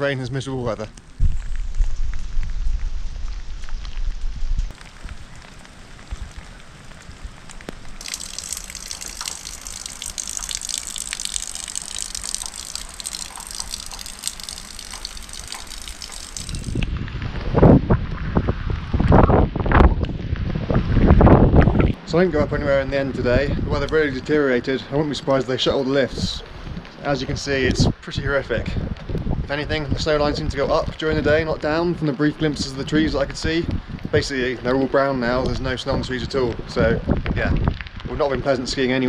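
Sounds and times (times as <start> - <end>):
heavy rain falling: 4.7 - 17.0
wind gusts buffeting microphone: 16.3 - 24.2, 26.0 - 38.9.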